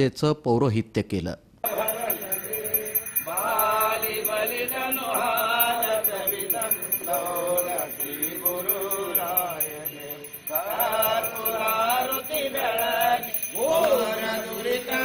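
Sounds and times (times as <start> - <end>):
priest chanting mantras: 1.6 - 15.0.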